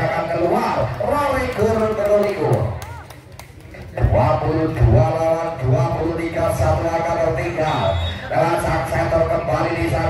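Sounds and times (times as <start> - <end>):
man commentating: 0.0 - 3.0, 3.9 - 10.0.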